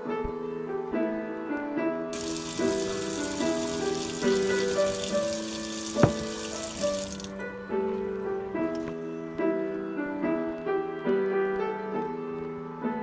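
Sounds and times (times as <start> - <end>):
tap running into steel sink: 2.2 - 7.5
sharp knock: 6.0 - 6.5.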